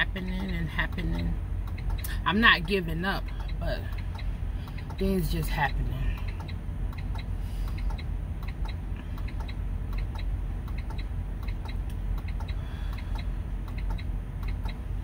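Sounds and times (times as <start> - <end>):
low steady rumble: 0.0 - 15.0
steady evenly spaced clicking: 0.4 - 5.0, 6.2 - 14.8.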